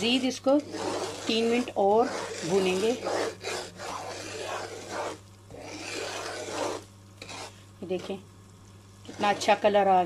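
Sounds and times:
wooden spatula scraping pan: 0.0 - 8.2, 9.1 - 9.8.

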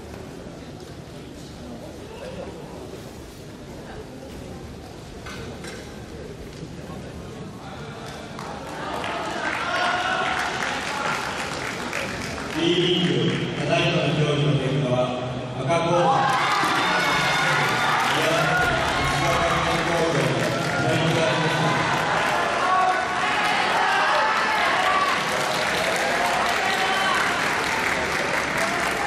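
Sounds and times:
spectators applauding: 8.0 - 13.7, 16.2 - 29.0.

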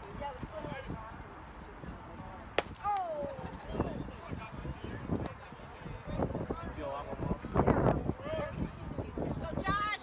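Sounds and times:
baseball bat crack: 2.6 - 3.2.

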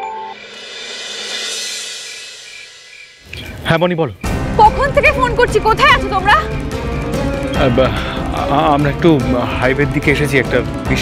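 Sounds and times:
cymbal swell: 0.0 - 3.4.

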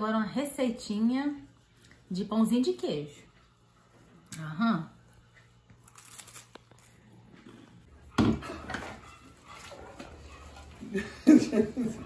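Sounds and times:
cracker crunching: 5.7 - 7.4
dishes clattering: 8.1 - 9.4.

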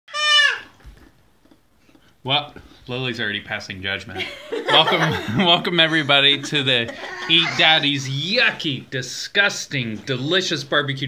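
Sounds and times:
child's high-pitched bleating cry: 0.1 - 0.7.

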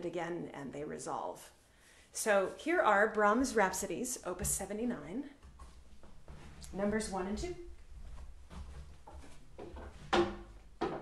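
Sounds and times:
faint shuffling: 2.2 - 10.1.

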